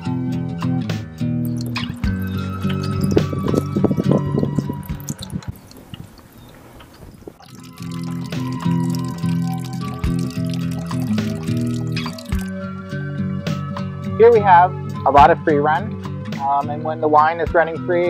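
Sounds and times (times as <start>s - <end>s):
background music with held chords: 0.0s - 5.6s, 7.4s - 18.0s
wine trickling into plastic bucket: 1.4s - 12.5s.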